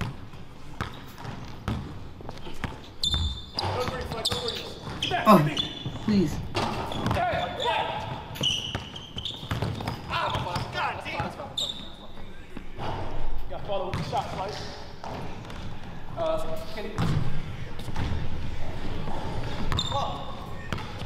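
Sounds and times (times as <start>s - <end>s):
sneaker squeaks: 0.8s - 12.2s, 19.5s - 21.0s
players' voices: 3.7s - 6.4s.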